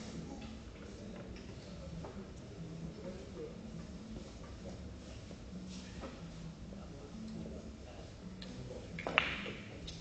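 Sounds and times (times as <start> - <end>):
cue striking ball: 9.0 - 9.7
billiard balls clicking: 9.0 - 10.0.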